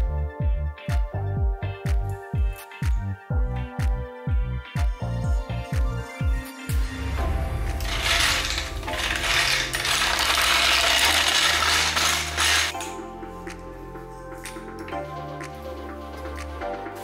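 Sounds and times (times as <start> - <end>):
background music: 0.0 - 17.0
mechanical rattling: 7.2 - 12.8.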